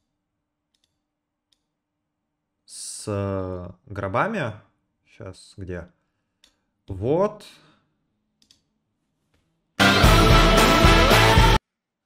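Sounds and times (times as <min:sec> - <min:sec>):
computer mouse clicks: 0:00.7 - 0:01.7, 0:08.4 - 0:08.7.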